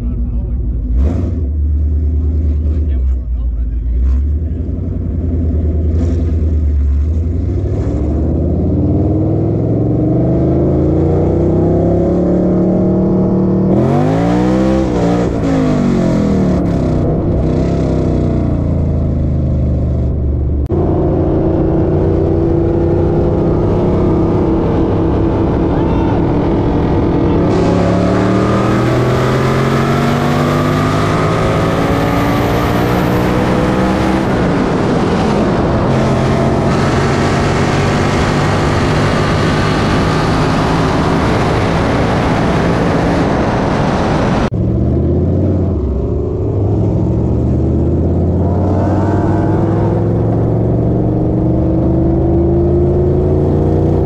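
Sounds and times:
car engine accelerating: 0.0 - 54.0
second car engine: 0.0 - 54.0
wind noise: 20.0 - 54.0.

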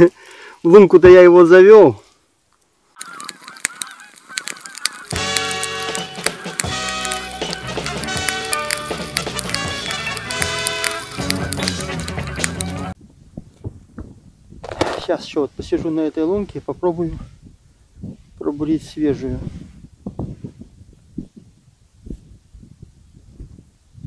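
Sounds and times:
geese honking: 3.0 - 13.0
background music: 5.1 - 13.0.

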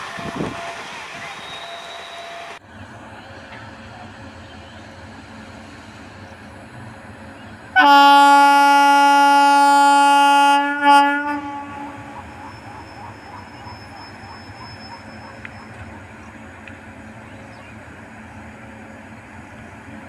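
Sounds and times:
train rumbling: 0.0 - 20.0
train horn blast: 7.8 - 12.4.

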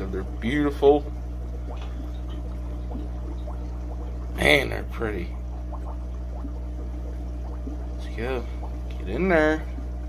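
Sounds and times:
aquarium hum: 0.0 - 10.0
water trickling: 0.0 - 10.0.

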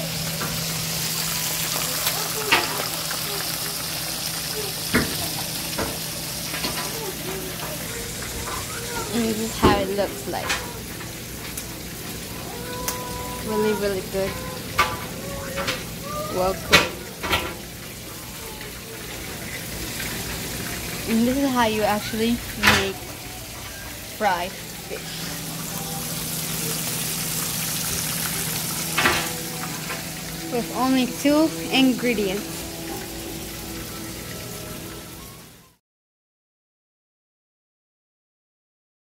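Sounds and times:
hot oil sizzling in a frying pan: 0.0 - 35.8.

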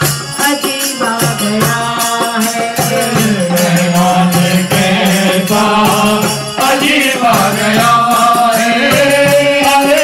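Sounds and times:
harmonium chords: 0.0 - 10.0
group chanting: 3.6 - 10.0.

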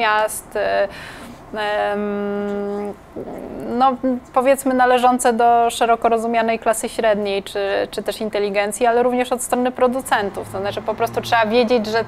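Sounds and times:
short breath in: 0.9 - 1.4.

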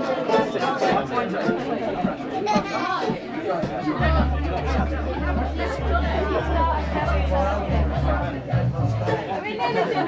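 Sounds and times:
banjo: 0.0 - 10.0
voices in the room: 0.0 - 10.0
deep sustained low bass: 4.0 - 9.1
double bass: 4.0 - 9.3.

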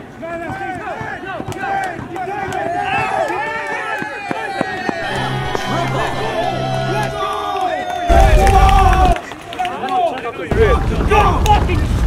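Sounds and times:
men shouting over one another: 2.2 - 9.2.

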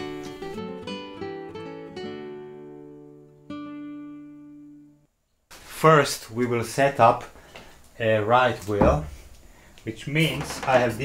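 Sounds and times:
acoustic guitar strummed chords: 0.0 - 5.1.

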